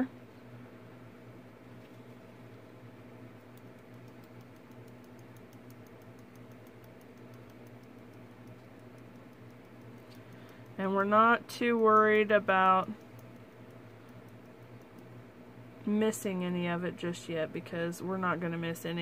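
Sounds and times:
powder shaken from jar ticking: 3.4s - 15.0s.

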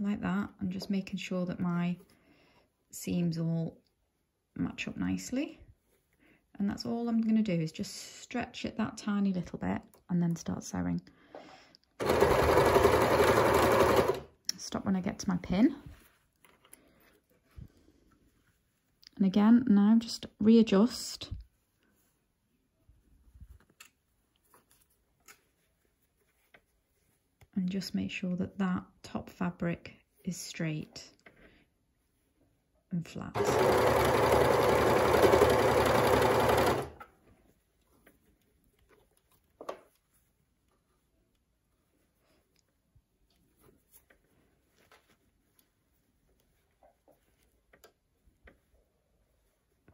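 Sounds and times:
handling of knit fabric: 14.7s - 20.0s, 20.8s - 28.2s, 37.2s - 49.9s.

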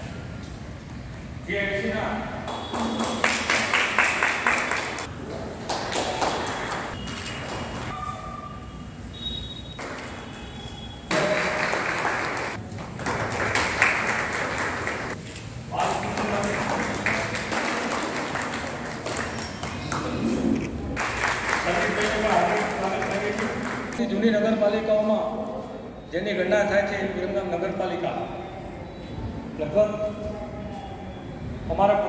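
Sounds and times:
people applauding: 2.5s - 8.2s, 11.1s - 15.2s, 15.8s - 20.4s, 21.0s - 24.0s.

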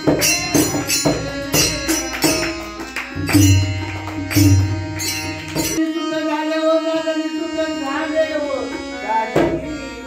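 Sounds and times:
harmonium notes: 0.0s - 10.0s.

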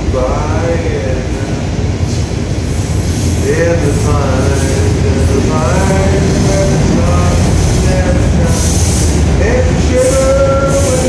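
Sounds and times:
train rumbling past: 0.0s - 11.0s.

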